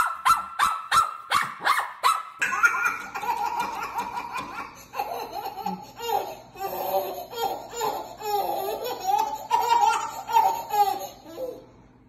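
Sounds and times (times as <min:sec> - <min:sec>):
baby giggling: 0:02.4 - 0:11.6.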